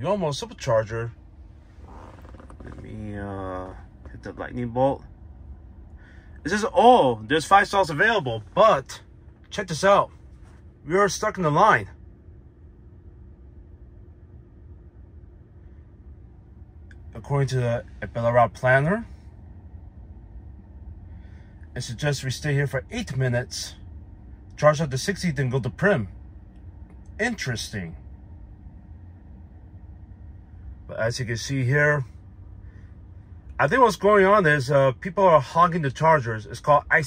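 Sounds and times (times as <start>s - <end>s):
low hum inside car cabin: 0.0s - 37.0s.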